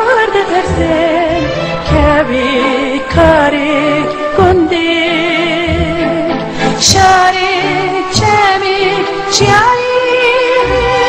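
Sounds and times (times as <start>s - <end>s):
instrumental backing: 0.0s - 11.0s
woman singing: 0.0s - 11.0s.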